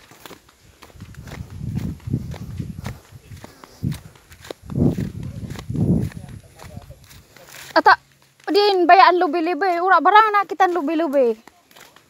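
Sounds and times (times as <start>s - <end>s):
footsteps on dirt path: 0.0s - 12.0s.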